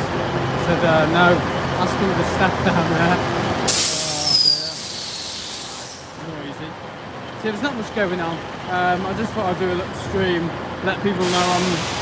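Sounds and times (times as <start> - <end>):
compressed air hissing from train: 3.7 - 6.2, 11.2 - 12.0.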